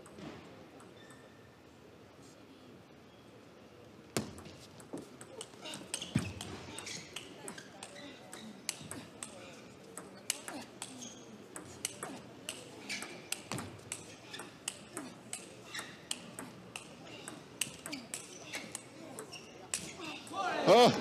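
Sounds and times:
murmur of voices: 1.6s - 21.0s.

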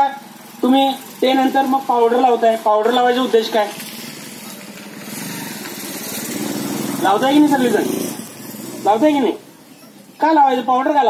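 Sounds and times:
small engine running: 0.0s - 10.1s.

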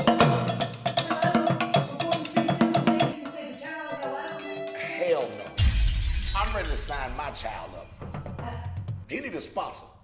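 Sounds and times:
loud shattering crash: 5.6s - 7.4s.

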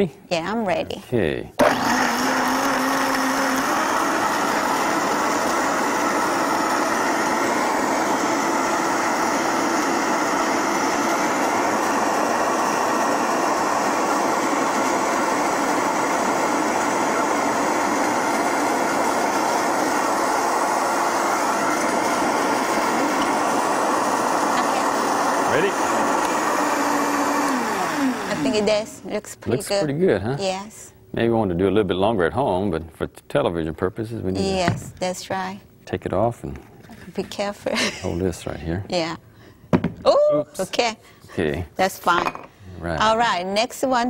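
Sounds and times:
blender running: 1.6s - 29.0s, 34.4s - 34.8s, 42.8s - 43.4s.

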